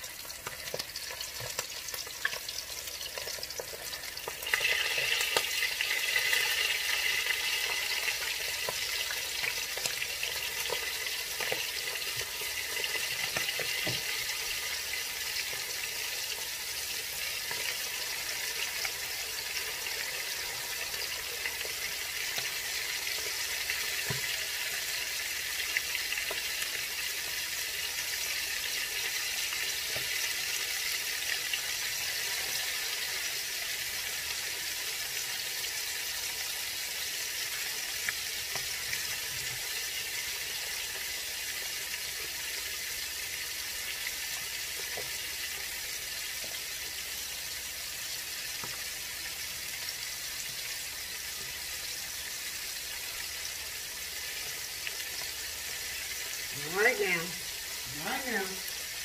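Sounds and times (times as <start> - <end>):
chicken frying in hot oil: 0.0 - 59.0.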